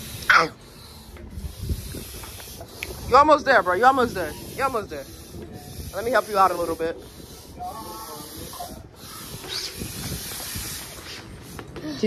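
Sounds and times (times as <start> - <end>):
air hissing into inflatable ring: 0.0 - 3.1, 4.0 - 12.0.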